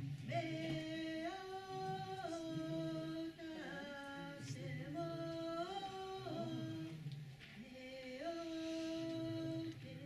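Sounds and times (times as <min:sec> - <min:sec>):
woman singing unaccompanied: 0:00.2 - 0:10.0.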